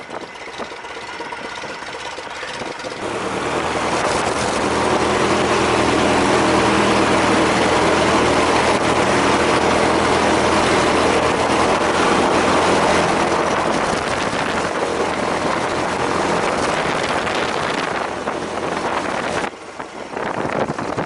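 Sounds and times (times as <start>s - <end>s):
propeller plane engine: 0.0s - 21.0s.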